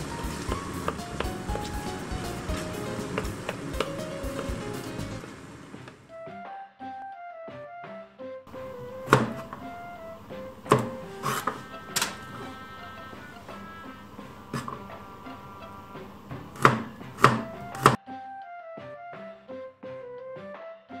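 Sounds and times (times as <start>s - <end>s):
background music: 0.0s - 21.0s
knife chopping on plastic board: 2.7s - 4.6s, 8.8s - 9.7s, 10.3s - 11.6s, 14.5s - 14.8s, 16.3s - 18.0s.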